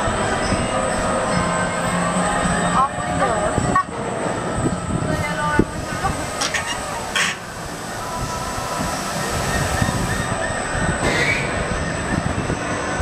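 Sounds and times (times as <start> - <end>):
people's voices: 0.0 - 7.5
roller coaster train rumbling: 0.0 - 13.0.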